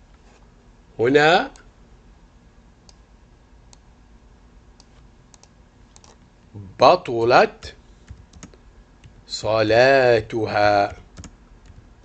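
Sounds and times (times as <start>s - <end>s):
faint keyboard and mouse clicks: 4.8s - 6.2s, 8.0s - 9.2s, 10.8s - 11.9s.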